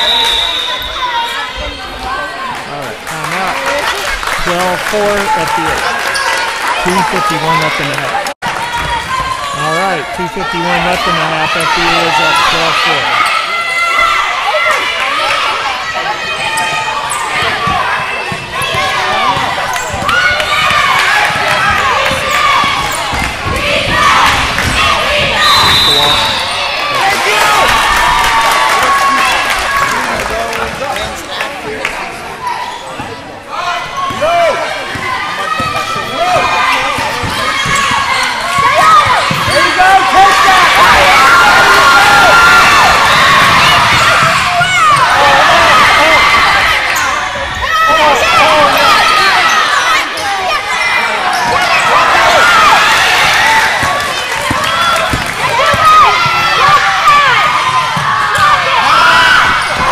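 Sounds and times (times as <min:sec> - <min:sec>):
people shouting and chattering: 0:00.0 - 0:59.9.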